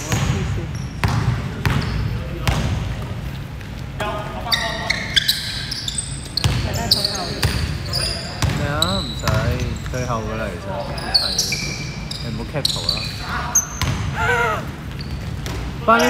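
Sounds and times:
sneakers squeaking on court: 0:00.0 - 0:03.1, 0:04.5 - 0:16.0.

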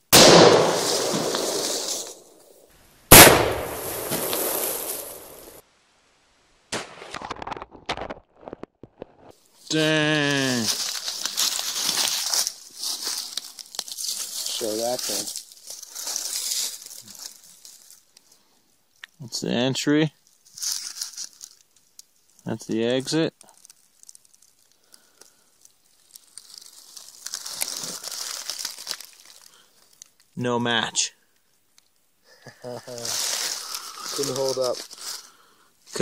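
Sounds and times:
dry leaves crunching underfoot: 0:00.2 - 0:02.5, 0:03.2 - 0:05.6, 0:09.7 - 0:18.2, 0:20.2 - 0:22.4, 0:23.4 - 0:30.2, 0:32.8 - 0:35.4
fabric cover crinkling: 0:10.3 - 0:18.2, 0:20.4 - 0:22.4, 0:23.4 - 0:30.2, 0:32.8 - 0:35.3.

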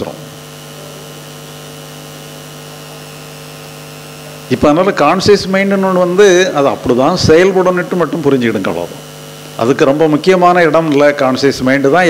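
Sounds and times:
steady background hum with tones: 0:00.0 - 0:12.0.

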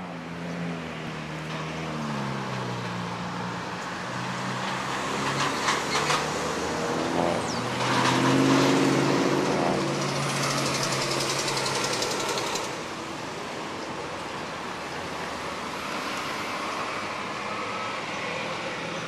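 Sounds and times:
vehicles passing: 0:00.0 - 0:19.0
car engines running: 0:00.1 - 0:19.0.

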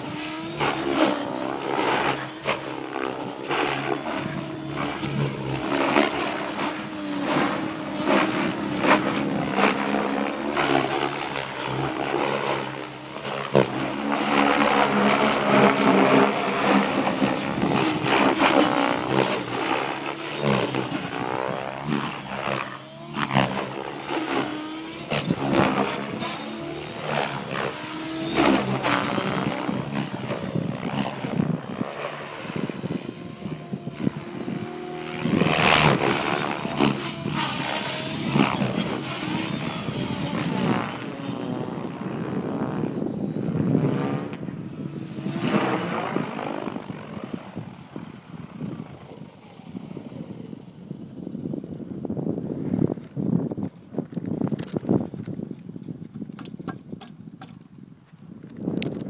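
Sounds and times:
electric motor whining: 0:00.0 - 0:52.1
helicopter rotor blades whooshing: 0:00.0 - 0:57.2.

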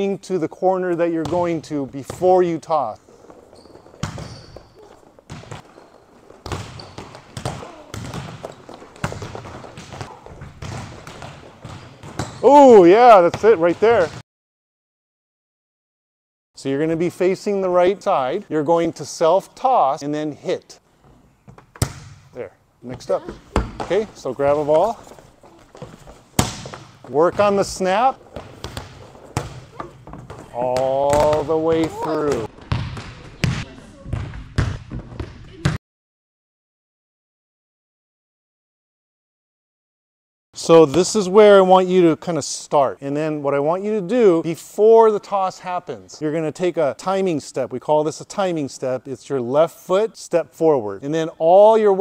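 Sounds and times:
volleyballs slapping and bouncing: 0:00.9 - 0:14.2, 0:21.4 - 0:35.8
volleyball smack in gym: 0:26.4 - 0:26.9.

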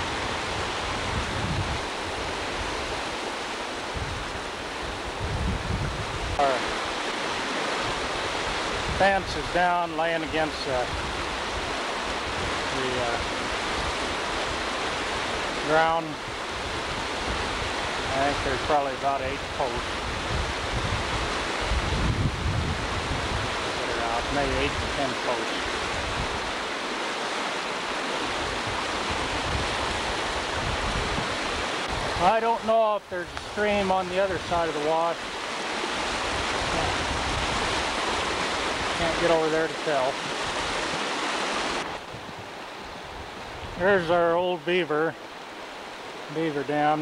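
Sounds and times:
wind buffeting microphone: 0:00.0 - 0:09.7, 0:10.3 - 0:32.4, 0:33.3 - 0:44.0
floodwater rushing: 0:00.0 - 0:47.0.

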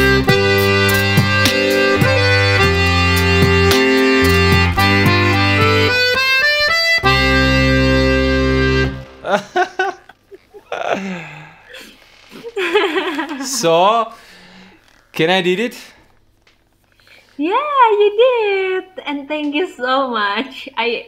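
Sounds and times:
button accordion melody: 0:00.0 - 0:10.0
laughter: 0:09.2 - 0:11.0, 0:12.4 - 0:13.7.

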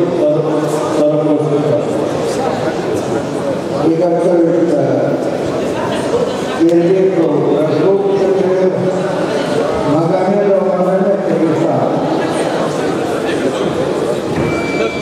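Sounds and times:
men talking: 0:00.0 - 0:05.4, 0:06.6 - 0:15.0
murmur in large hall: 0:00.0 - 0:15.0.

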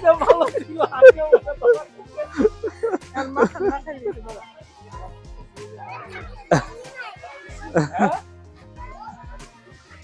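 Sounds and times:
background music: 0:00.0 - 0:10.0
children playing and calling out: 0:00.0 - 0:10.0.

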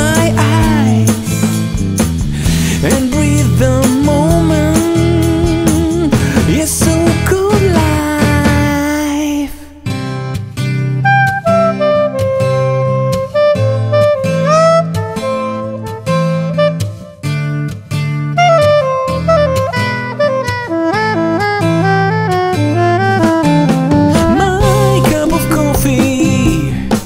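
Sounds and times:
saxophone solo: 0:00.0 - 0:01.4, 0:10.9 - 0:26.9
steady drum beat: 0:00.0 - 0:09.0, 0:23.1 - 0:27.0
bass: 0:00.0 - 0:27.0.

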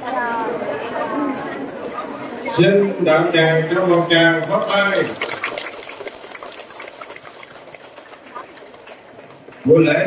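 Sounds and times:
audience applauding: 0:04.4 - 0:09.7.

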